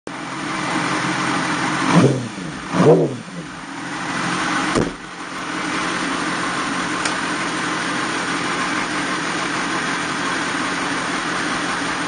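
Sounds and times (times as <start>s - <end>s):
motorcycle engine idling: 0.1s - 12.0s.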